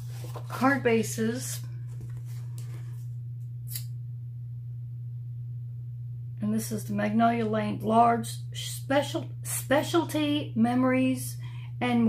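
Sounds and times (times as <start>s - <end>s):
paper cards swishing: 0.0s - 0.8s
steady low hum: 0.0s - 12.0s.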